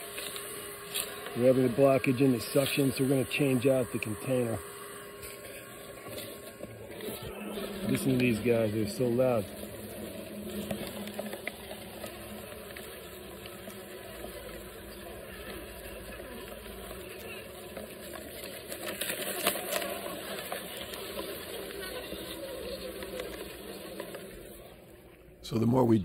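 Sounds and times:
bumblebees buzzing in a bottle: 0.0 - 24.6
person speaking: 1.3 - 4.7, 7.3 - 9.5.

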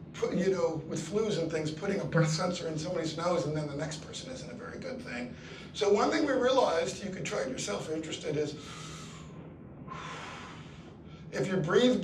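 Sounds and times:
man breathing: 5.3 - 5.8, 8.6 - 11.4.

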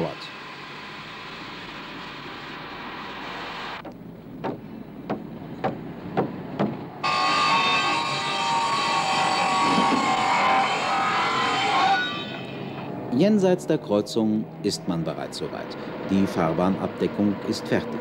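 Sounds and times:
sharp knocks: 3.8 - 6.8
circular saw cutting timber: 7.0 - 12.9.

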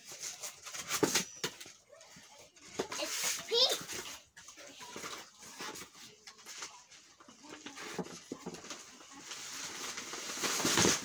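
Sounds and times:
tissue paper crinkling: 4.8 - 11.0.

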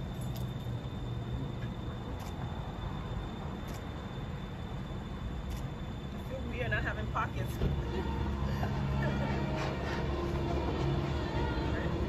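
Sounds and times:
city traffic rumble: 0.0 - 12.0.

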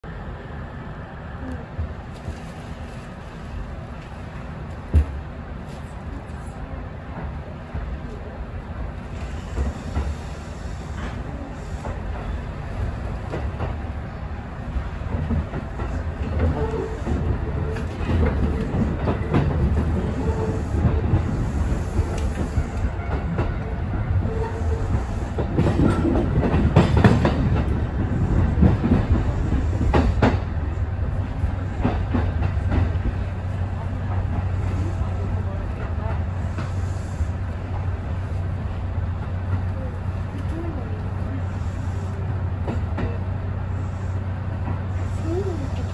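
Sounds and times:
electric train rumble and hum: 0.0 - 45.9.

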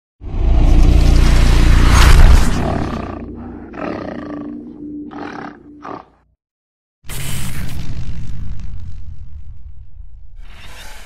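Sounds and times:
animal roars: 0.5 - 6.2.

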